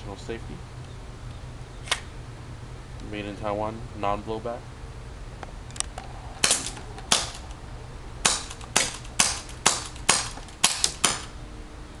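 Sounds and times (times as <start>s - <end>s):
airsoft pistol shots: 6.4s - 7.5s, 8.2s - 11.4s.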